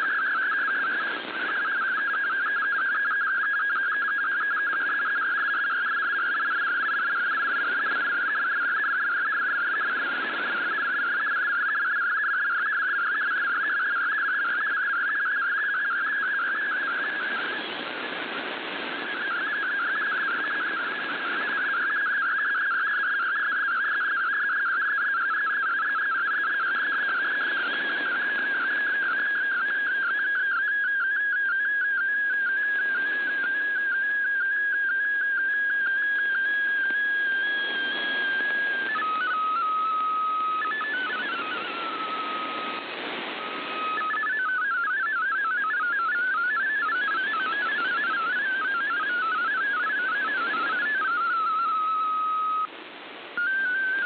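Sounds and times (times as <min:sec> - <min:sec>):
warbling whistle-like data tone: 0:00.0 - 0:52.7, 0:53.3 - 0:54.0
shortwave hiss: 0:40.1 - 0:44.0.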